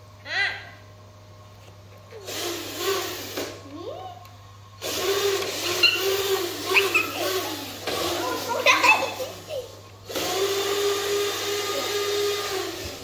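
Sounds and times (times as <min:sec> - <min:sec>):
small electric toy truck motor whir: 0:02.2 - 0:03.6, 0:04.8 - 0:09.3, 0:10.1 - 0:13.0
children talking and calling out: 0:05.7 - 0:09.9.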